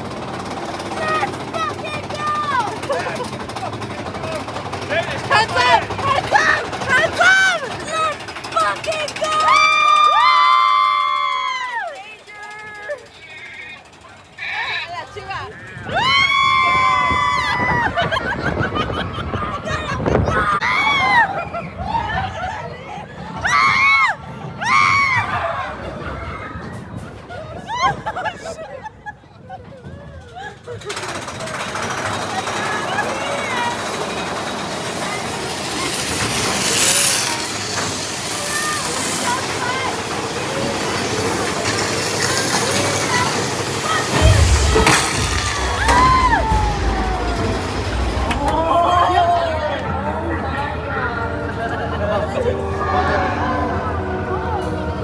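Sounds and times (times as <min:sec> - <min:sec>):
roller coaster rumbling on track: 0:00.0 - 0:55.0
riders screaming: 0:06.1 - 0:18.0, 0:42.7 - 0:49.7.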